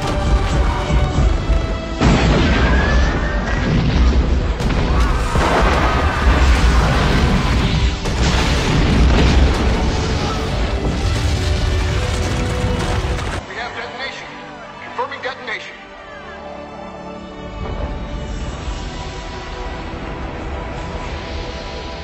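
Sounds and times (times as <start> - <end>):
music: 0.0 - 22.0
huge explosion with deep rumble: 2.0 - 13.1.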